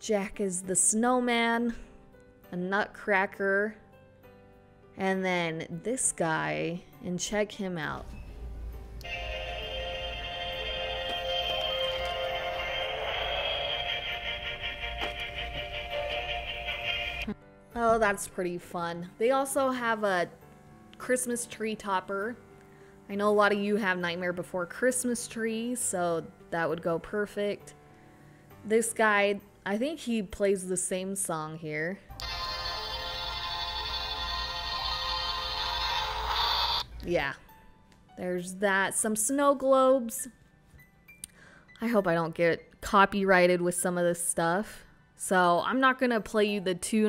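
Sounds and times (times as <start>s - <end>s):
toy playing a song: 9.0s - 17.3s, 32.2s - 36.8s.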